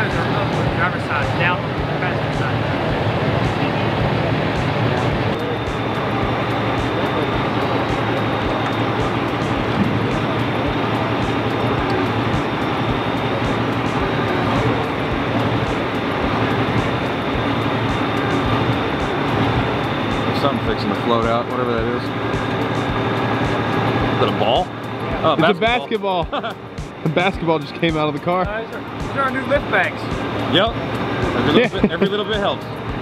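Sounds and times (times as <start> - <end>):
faint high whine: 0.0 - 33.0
truck engine and winch running: 0.0 - 33.0.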